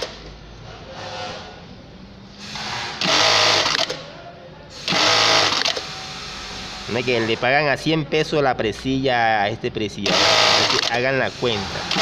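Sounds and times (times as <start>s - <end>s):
industrial sewing machine tacking: 2.5s - 4.0s, 4.9s - 6.0s, 10.0s - 12.0s.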